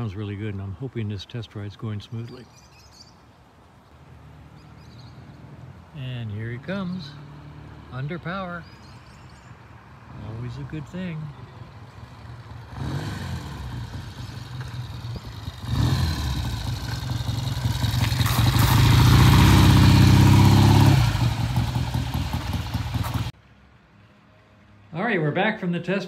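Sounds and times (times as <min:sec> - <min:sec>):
motorcycle engine passing: 0:06.5 - 0:08.1, 0:11.5 - 0:23.3.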